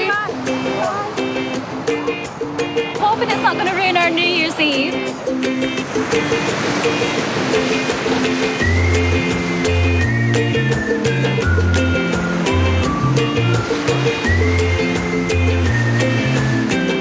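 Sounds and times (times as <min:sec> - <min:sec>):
background music with steady beat: 0:00.0 - 0:17.0
bass line: 0:08.6 - 0:16.7.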